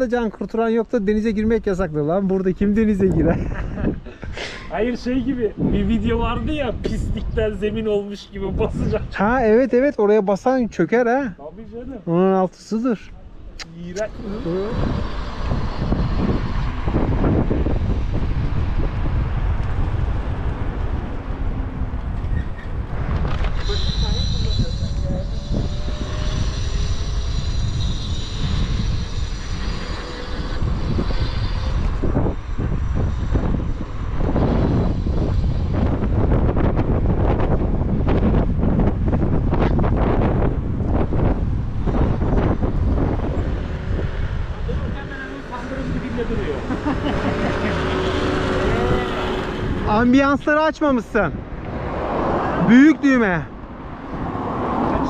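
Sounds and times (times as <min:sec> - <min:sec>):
tyre and road noise: 0:00.0 - 0:55.0
wind buffeting microphone: 0:00.0 - 0:55.0
thin high whine: 0:23.5 - 0:36.1.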